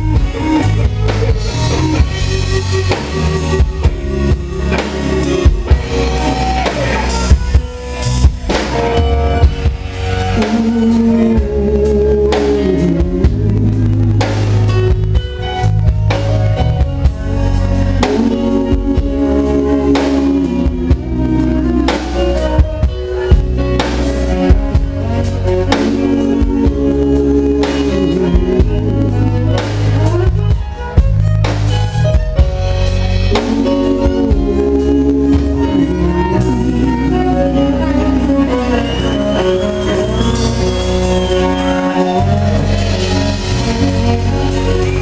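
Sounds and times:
drum kit beat: 0:00.0 - 0:45.0
electric guitar: 0:00.0 - 0:45.0
steady bass: 0:00.0 - 0:45.0
sustained pitched notes: 0:00.0 - 0:45.0
man singing: 0:00.4 - 0:15.0, 0:17.0 - 0:30.6, 0:33.1 - 0:45.0.

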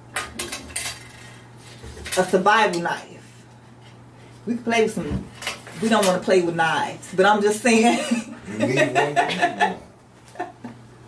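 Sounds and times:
metal objects clinking and clattering: 0:00.2 - 0:01.2.

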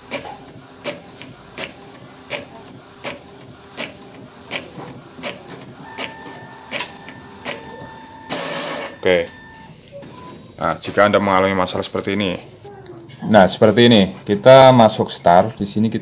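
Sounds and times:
inkjet printer clacking: 0:00.0 - 0:08.9
printer whine: 0:00.0 - 0:11.5.

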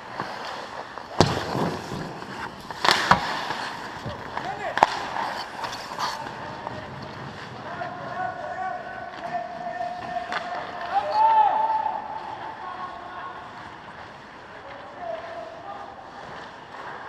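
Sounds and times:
hockey sticks and puck cracking: 0:00.0 - 0:17.0
skates scraping ice: 0:00.0 - 0:17.0.

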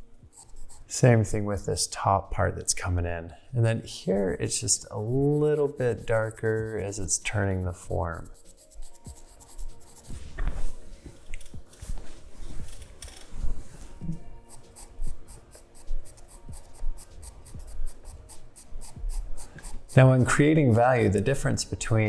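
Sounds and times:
charcoal pencil scratching on paper: 0:00.3 - 0:01.0, 0:04.1 - 0:10.8, 0:14.4 - 0:21.9.

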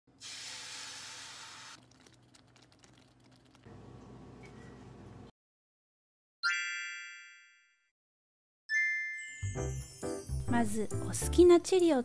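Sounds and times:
egg sizzling in frying pan: 0:00.2 - 0:03.7.

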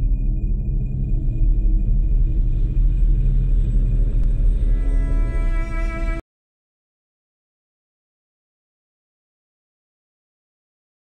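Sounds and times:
deep rumbling drone: 0:00.0 - 0:06.2.

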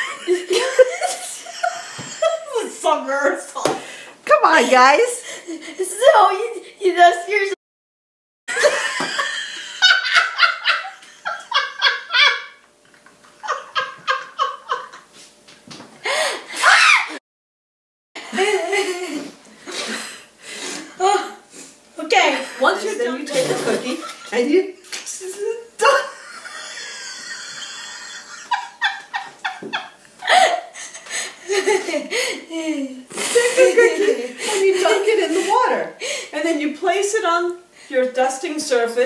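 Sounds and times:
women laughing: 0:00.0 - 0:02.8, 0:08.5 - 0:12.6, 0:13.3 - 0:15.1, 0:18.2 - 0:19.3, 0:25.3 - 0:35.8.

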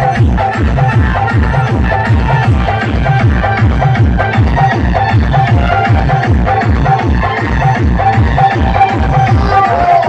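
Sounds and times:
dance music with heavy bass: 0:00.0 - 0:10.0.

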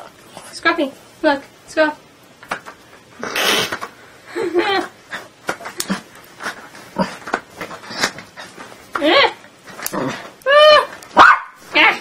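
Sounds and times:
dog barking: 0:11.2 - 0:11.6.

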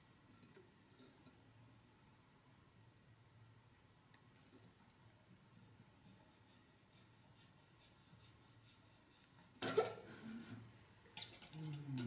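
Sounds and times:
faint voice murmuring: 0:11.4 - 0:12.0.

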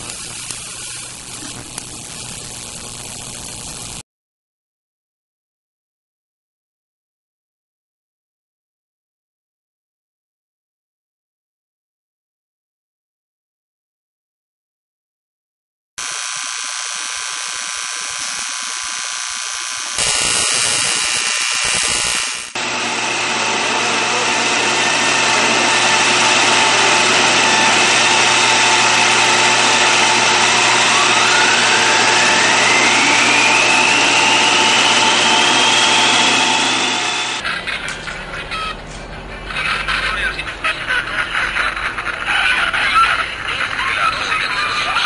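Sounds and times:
electronic noise and hum: 0:00.0 - 0:04.0, 0:16.0 - 0:23.0, 0:24.5 - 0:37.4
whistle gliding upward: 0:27.5 - 0:37.4.

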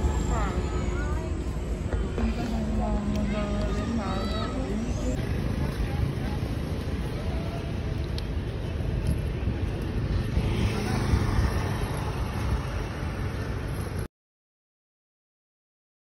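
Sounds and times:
faint voices: 0:00.0 - 0:13.6
road traffic rumble: 0:00.0 - 0:14.1.

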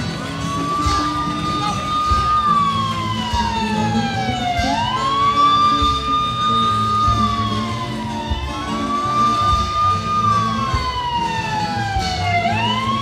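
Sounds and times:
siren wailing: 0:00.0 - 0:13.0
steady drumbeats: 0:00.0 - 0:13.0.

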